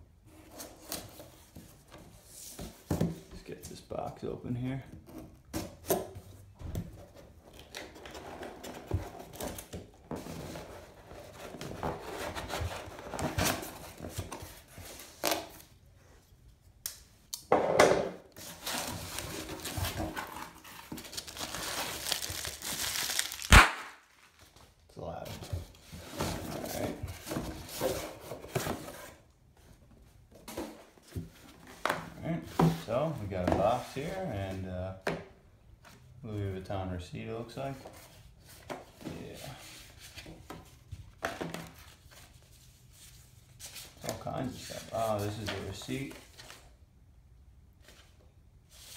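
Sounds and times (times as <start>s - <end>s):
tape and cardboard tearing: 11.6s - 15.8s, 18.4s - 24.4s
paper packing crinkling: 18.4s - 24.6s.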